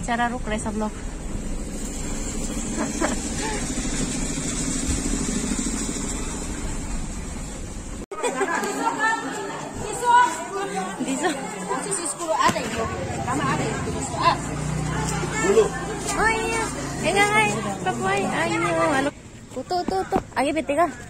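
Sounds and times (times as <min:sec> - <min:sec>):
car engine rumble: 0:00.0 - 0:08.1
chatter of voices: 0:08.1 - 0:21.0.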